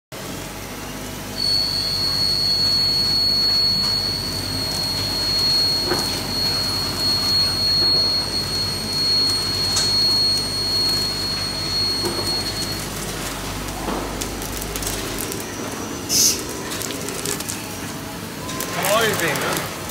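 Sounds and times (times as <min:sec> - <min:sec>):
high-pitched whine: 0:00.8 - 0:19.6.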